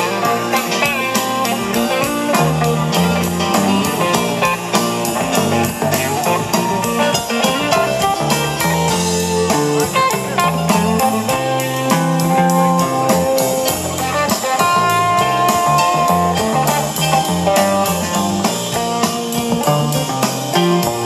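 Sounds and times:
bass: 0.0 - 21.0
drum kit cymbal beat: 0.0 - 21.0
electric guitar lead notes: 0.0 - 21.0
keyboards: 0.0 - 21.0.

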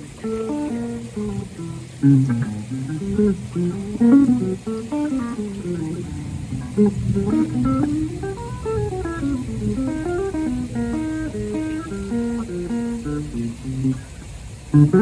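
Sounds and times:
jazz quartet playing: 0.0 - 14.0.

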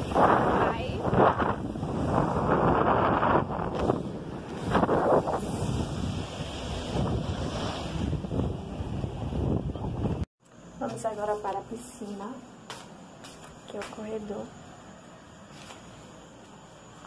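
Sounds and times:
wind buffeting microphone: 0.0 - 10.3
waves breaking on beach: 3.7 - 9.3.

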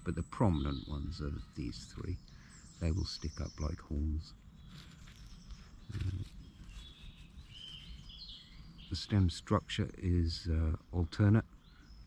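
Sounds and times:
outdoor background noise: 0.0 - 12.0
songbird whistling: 4.6 - 9.0.

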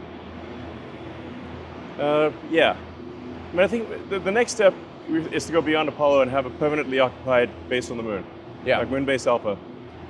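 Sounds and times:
factory hall hum: 0.0 - 10.0.

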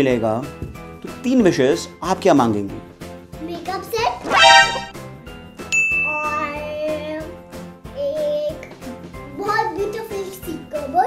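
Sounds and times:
light background music: 0.0 - 11.0
bright ding sound effect: 4.3 - 4.9.

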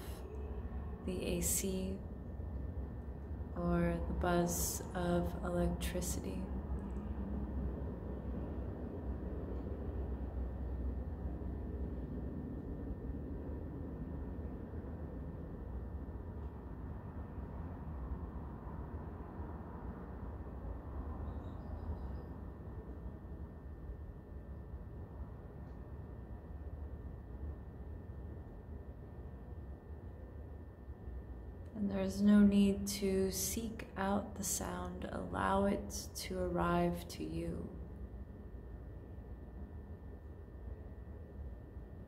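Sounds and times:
low room hum: 0.0 - 42.0.

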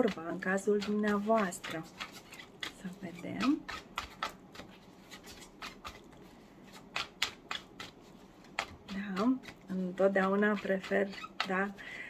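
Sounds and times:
cards being shuffled by hand: 0.0 - 11.8.

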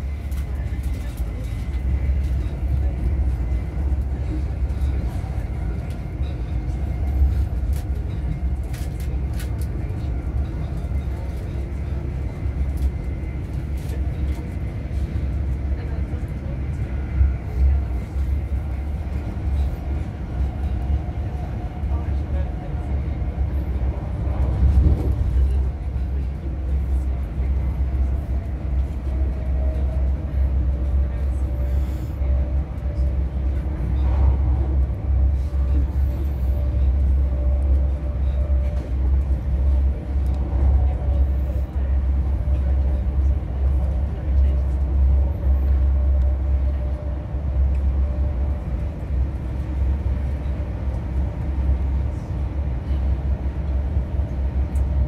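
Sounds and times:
train wheels rumbling on track: 0.0 - 55.0.

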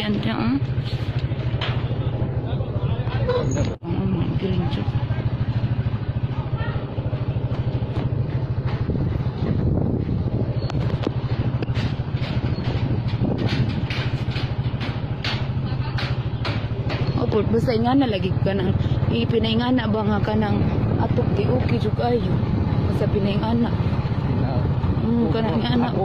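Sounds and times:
small motorcycle engine running: 0.0 - 26.0.

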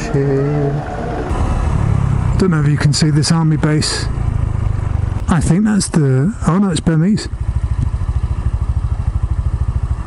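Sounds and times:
road and wind noise: 0.0 - 10.0
small motorbike engine running: 2.5 - 10.0.

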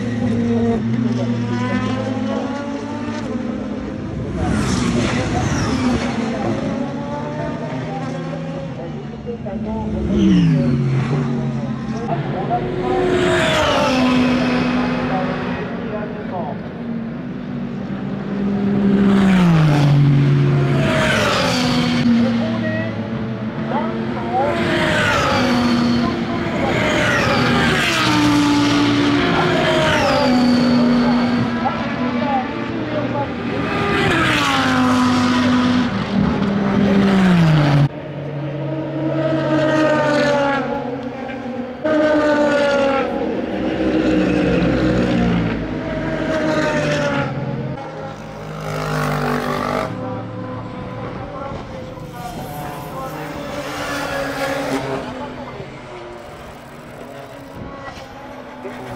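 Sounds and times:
race cars passing at high revs: 0.0 - 58.9.

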